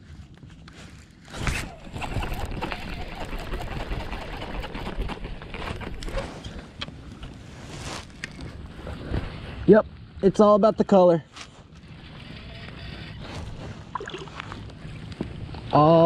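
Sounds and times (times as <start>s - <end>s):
water splashing and sloshing: 0.8s - 10.2s, 11.3s - 15.8s.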